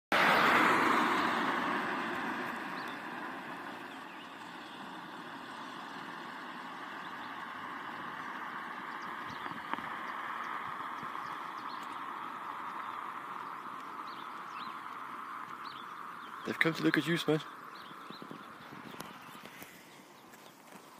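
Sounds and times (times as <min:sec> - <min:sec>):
vehicle passing: 0:00.1 - 0:20.9.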